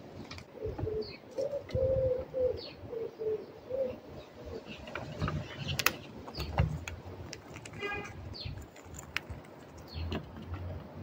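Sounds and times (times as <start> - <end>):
small birds chirping: 0.4 - 10.6
bird cooing: 0.6 - 4.8.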